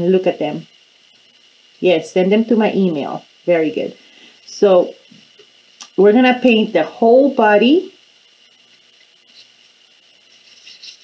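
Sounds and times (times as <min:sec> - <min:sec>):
paintbrush brushing on paper plate: 0:09.2 - 0:11.0.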